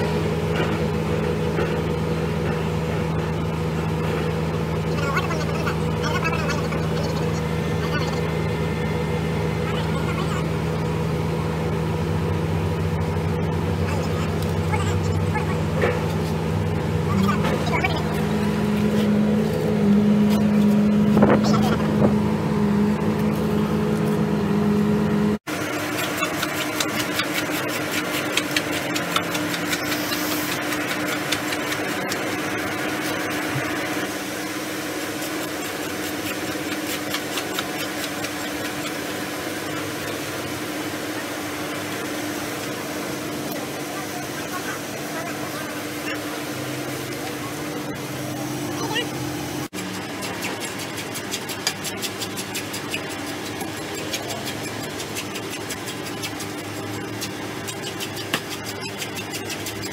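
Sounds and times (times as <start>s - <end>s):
engine running: 0.0s - 59.9s
steady hum: 0.0s - 59.9s.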